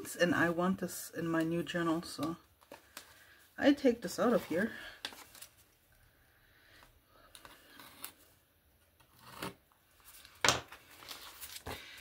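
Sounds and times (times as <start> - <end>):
paper rustling: 4.1 - 5.8, 10.0 - 12.0.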